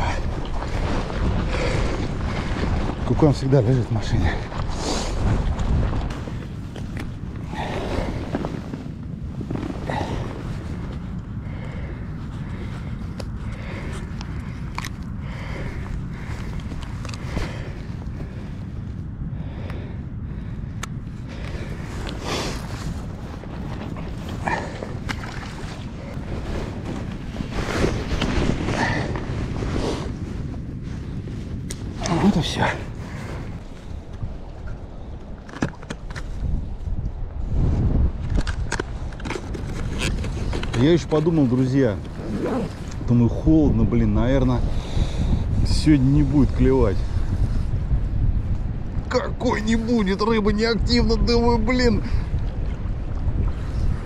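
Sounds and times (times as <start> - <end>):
wind rumble on microphone: 0.0 - 54.0.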